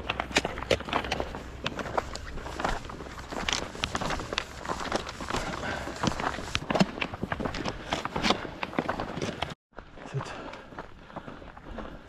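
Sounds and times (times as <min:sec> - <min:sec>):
trekking poles clicking on stones: 0:00.0 - 0:09.6
footsteps on rocky trail: 0:00.0 - 0:12.0.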